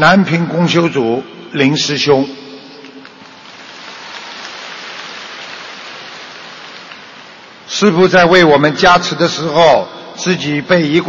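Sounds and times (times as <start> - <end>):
audience applauding: 2.8 - 7.7.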